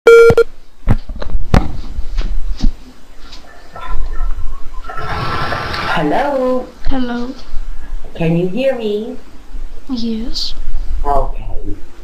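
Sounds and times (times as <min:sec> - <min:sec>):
noise burst: 0:04.0 - 0:12.0.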